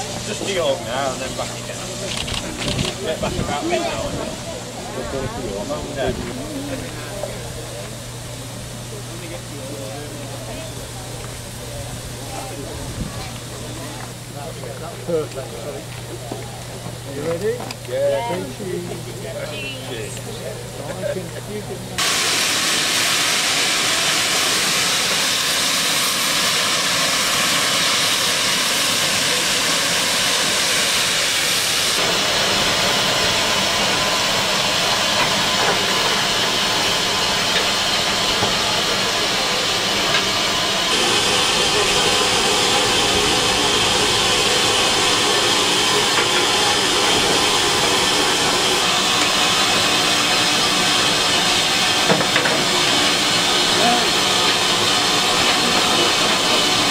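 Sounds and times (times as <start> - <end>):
indistinct talking: 0.0 - 56.9
steam locomotive hissing: 0.0 - 56.9.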